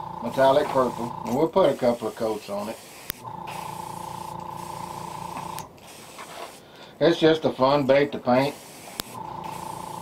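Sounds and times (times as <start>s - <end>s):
airbrush spraying hiss: 0.7s - 6.8s, 7.7s - 10.0s.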